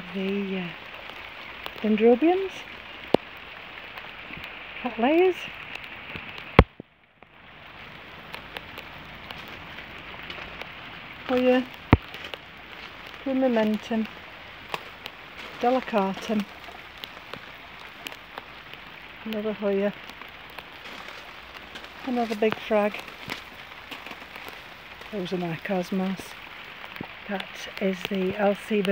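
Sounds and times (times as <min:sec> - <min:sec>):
rain on patio and leaves: 0:00.0 - 0:28.9.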